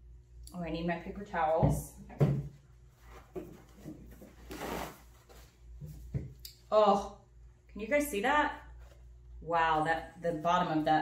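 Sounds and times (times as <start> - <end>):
paper towel rustle: 3.0 - 5.8.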